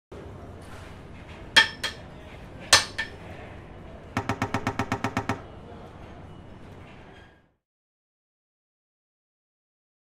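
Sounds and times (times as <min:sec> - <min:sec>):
rapid short pitched knocks: 0:04.2 - 0:05.5.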